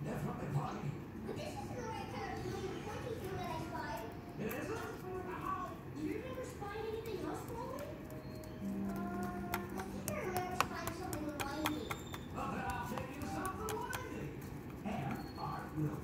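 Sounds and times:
music: 7.1 - 11.9.

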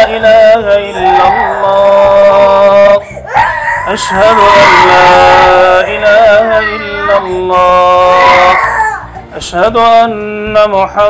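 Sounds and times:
man chanting call to prayer: 0.0 - 11.0
toddler crying loudly: 3.3 - 5.7, 6.4 - 9.2.

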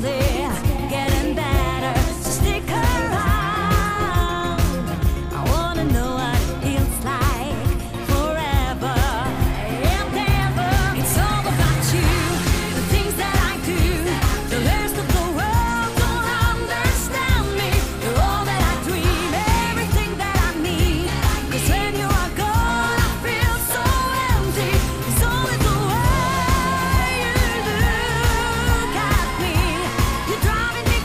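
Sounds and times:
drum beat: 0.0 - 22.8
band backing: 0.0 - 31.0
woman singing: 0.0 - 31.0.

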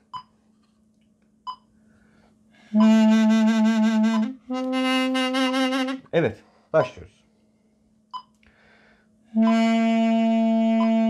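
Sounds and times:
double-reed pipe long notes: 2.7 - 6.1, 9.4 - 11.0.

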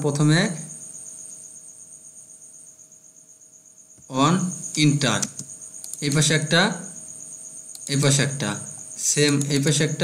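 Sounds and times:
crickets trilling: 0.0 - 10.0
faint low hum: 0.0 - 10.0.

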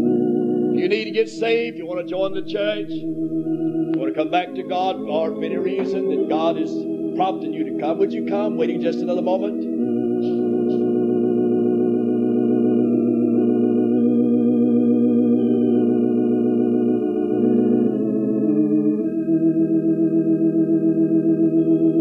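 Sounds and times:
church organ chords: 0.0 - 22.0.

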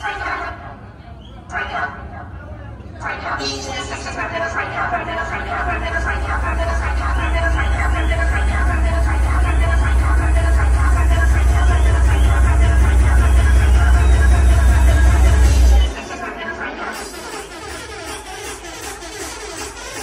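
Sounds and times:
voices: 0.0 - 17.1
loud dance music: 3.0 - 20.0.

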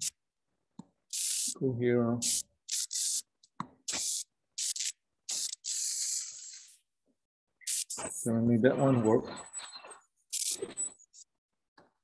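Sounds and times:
stylus scribbling on touchscreen: 2.2 - 3.3, 7.6 - 9.0, 10.3 - 11.3.

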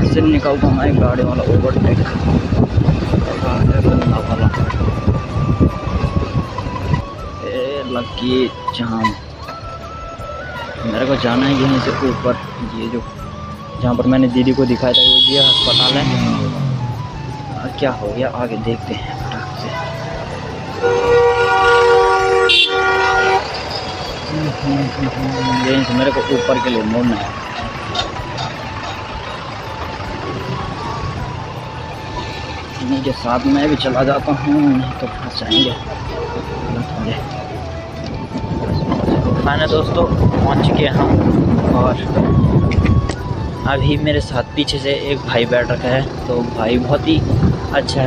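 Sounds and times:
wind rumble on microphone: 0.0 - 7.4, 37.9 - 44.0, 47.1 - 48.0
engines running: 0.0 - 48.0
vehicle horn: 14.9 - 16.6, 20.8 - 24.3, 25.3 - 26.9, 35.4 - 36.0.

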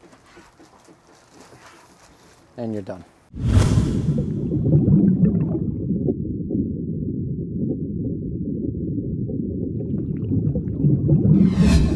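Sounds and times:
low underwater-style rumble: 3.8 - 11.9.

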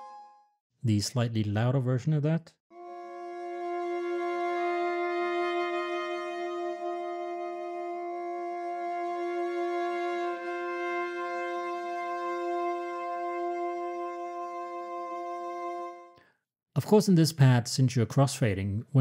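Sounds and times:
viola playing soft bowed chord: 2.8 - 16.2.

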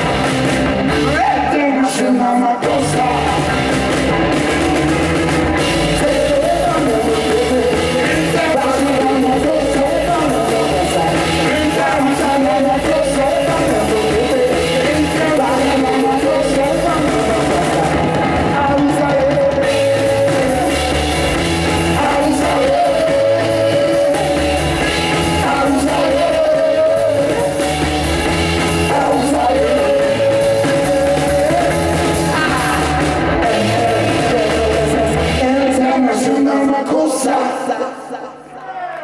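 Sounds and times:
drum kit: 0.0 - 1.7, 2.6 - 36.0
distorted electric guitar: 0.0 - 36.5
person singing: 1.0 - 3.9, 5.5 - 28.0, 28.6 - 38.9.

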